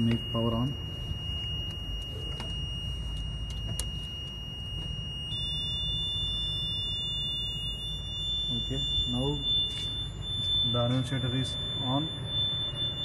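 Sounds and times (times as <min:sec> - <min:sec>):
high-pitched continuity beep: 0:00.0 - 0:13.0
low electrical hum: 0:00.0 - 0:13.0.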